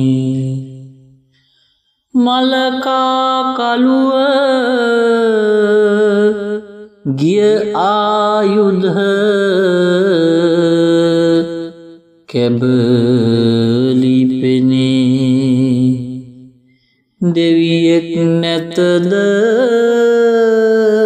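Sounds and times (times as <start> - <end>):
person chanting folk verse: 0.0 - 1.1, 2.1 - 16.4, 17.2 - 21.0.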